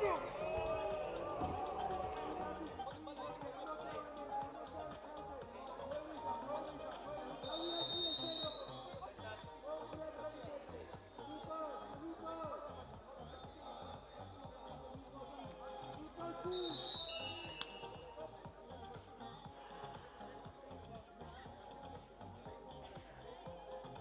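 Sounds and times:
indistinct voices: 0:00.0 - 0:21.4
background music: 0:00.0 - 0:24.0.

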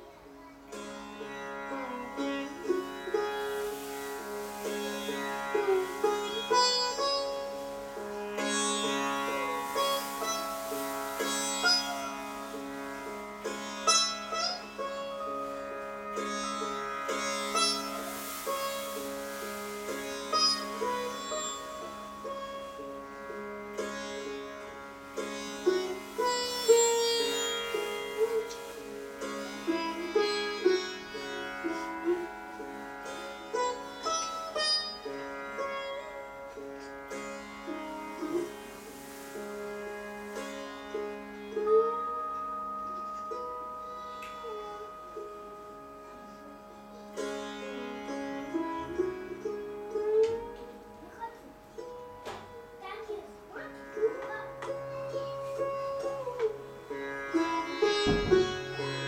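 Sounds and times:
sitar plucked notes: 0:00.0 - 0:59.0.

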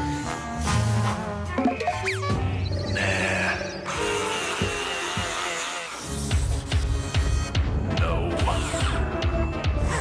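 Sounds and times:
music playing: 0:00.0 - 0:10.0.

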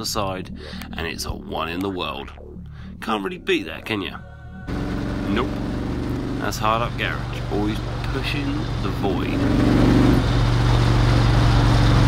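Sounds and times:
car engine droning at cruising speed: 0:04.5 - 0:12.0.

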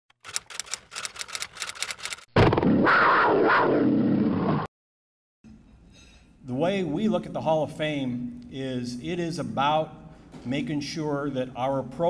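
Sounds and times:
typewriter-like clicks: 0:00.1 - 0:02.3.

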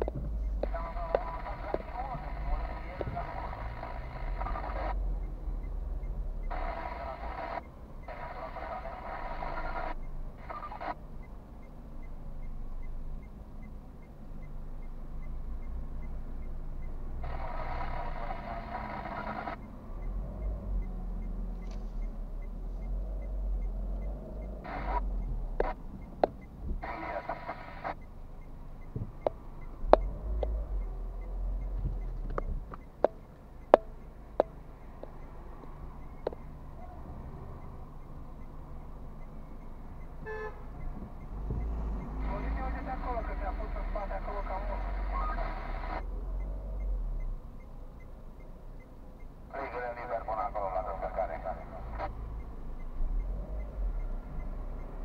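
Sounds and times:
sharp clicks: 0:00.0 - 0:20.2, 0:23.2 - 0:36.6
cars passing: 0:00.0 - 0:55.0
low traffic rumble: 0:00.0 - 0:55.0
muffled voice-like sound: 0:49.5 - 0:52.1.

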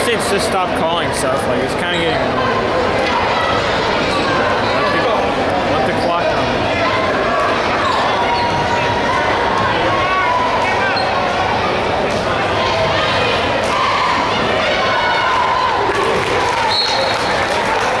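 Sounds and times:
crowd chatter and raised voices: 0:00.0 - 0:18.0.

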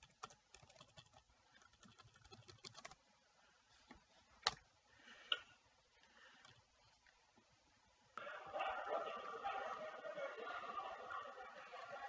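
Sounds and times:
computer keyboard clicks: 0:00.0 - 0:03.0.

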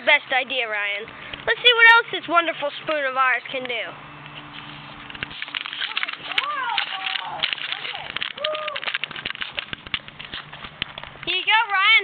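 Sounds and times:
camera handling clicks and rustles: 0:04.3 - 0:11.3
faint voices: 0:05.7 - 0:09.0.

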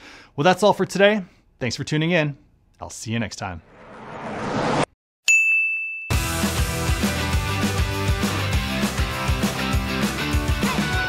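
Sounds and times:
music with steady beat: 0:06.1 - 0:11.0.

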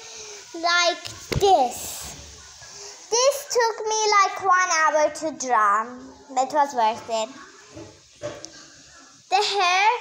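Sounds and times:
child speaking: 0:00.5 - 0:02.2, 0:03.1 - 0:07.5, 0:09.3 - 0:10.0.

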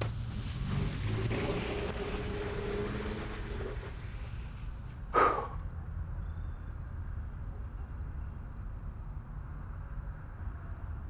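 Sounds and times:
car driving off: 0:00.0 - 0:06.2.

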